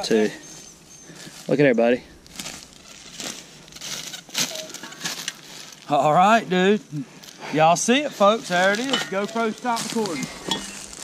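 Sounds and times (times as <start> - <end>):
footsteps crunching through dry leaves: 0.5 - 6.4, 7.2 - 11.0.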